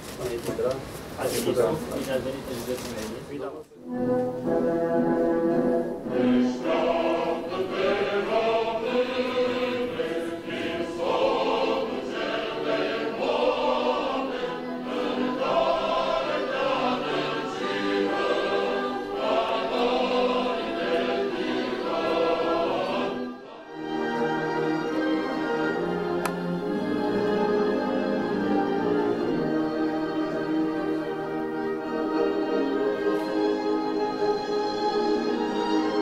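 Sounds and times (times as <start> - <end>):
different music: 3.8 - 36.0
choir singing with orchestra: 3.9 - 36.0.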